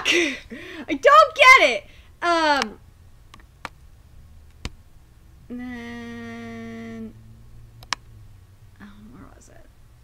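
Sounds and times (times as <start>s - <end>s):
woman saying nah: 5.5s - 7.2s.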